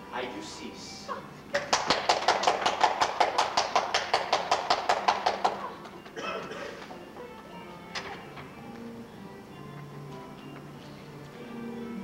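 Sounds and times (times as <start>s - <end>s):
audience applause: 1.6s - 5.7s.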